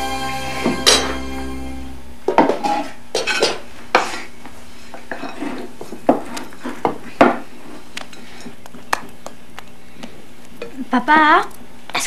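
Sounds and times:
dishes and utensils clinking: 0.5s - 1.3s, 2.3s - 4.2s.

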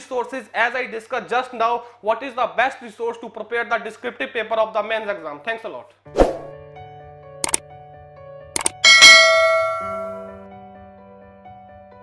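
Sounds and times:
soft background music: 6.1s - 12.0s
mouse clicks: 8.6s - 8.8s
bright bell ding: 8.6s - 10.4s.

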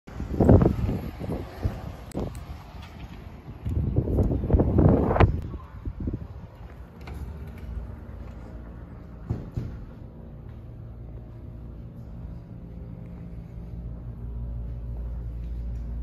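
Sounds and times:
wind buffeting microphone: 0.1s - 6.8s
street noise: 0.1s - 16.0s.

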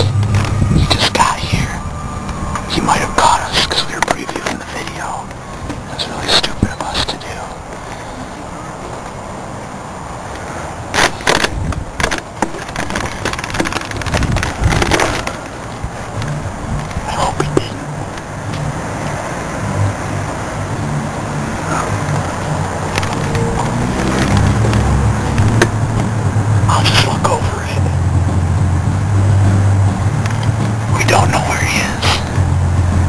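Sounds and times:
car low drone: 0.0s - 33.0s
microphone handling rustles: 10.9s - 19.2s.

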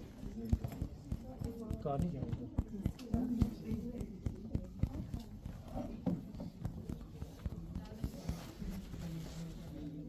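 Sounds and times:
faint voices in room: 0.0s - 10.0s.

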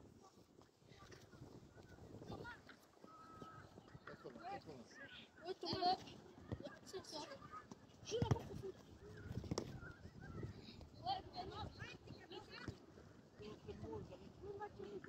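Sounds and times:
children calling and shouting: 2.2s - 15.0s
ball being kicked: 8.1s - 9.8s.

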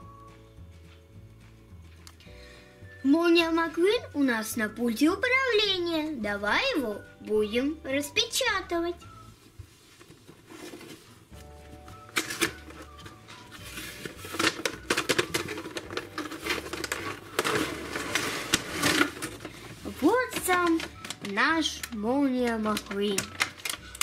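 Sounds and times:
faint background music: 0.0s - 24.0s
plastic tray crackling: 12.1s - 24.0s.

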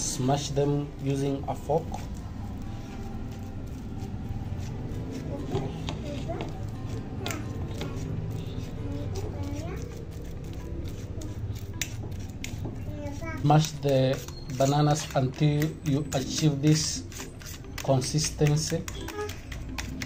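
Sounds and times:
fork mashing bananas: 0.0s - 20.0s.

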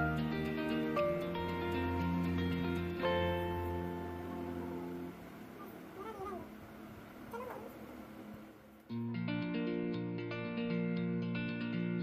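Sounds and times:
faint animal calls gliding in pitch: 5.6s - 6.6s, 7.3s - 7.8s.

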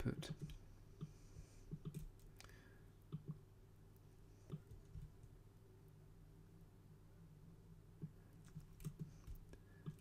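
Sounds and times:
low room hum: 0.0s - 10.0s
computer mouse clicks: 0.3s - 2.5s, 3.1s - 3.4s, 4.4s - 5.4s, 8.0s - 10.0s.

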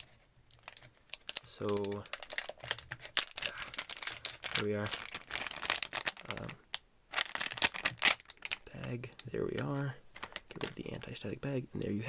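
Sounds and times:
plastic bag crinkling: 0.0s - 11.2s.

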